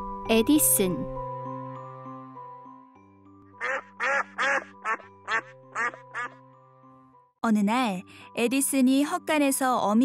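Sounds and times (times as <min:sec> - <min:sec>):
soft background music: 0:00.0 - 0:10.0
goose honking: 0:03.6 - 0:06.4.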